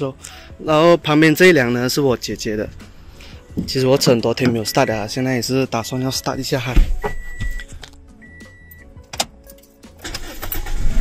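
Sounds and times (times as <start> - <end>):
car warning chime beeping: 4.3 - 8.9.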